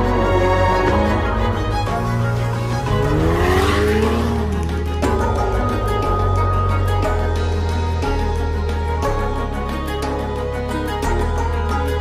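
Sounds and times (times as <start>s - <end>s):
background music: 0.0s - 12.0s
car engine revving past: 2.7s - 4.8s.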